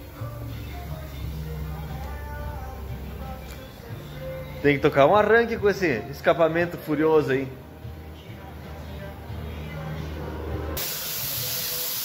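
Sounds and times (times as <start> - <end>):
spray gun hissing: 10.8 - 12.0.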